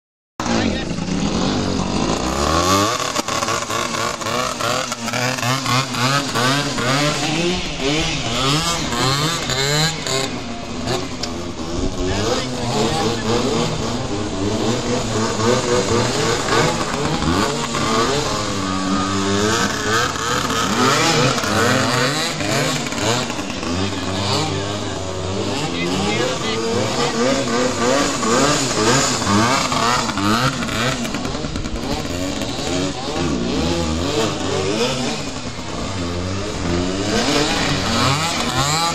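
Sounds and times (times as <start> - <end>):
minibike engine revving: 0.4 - 38.9.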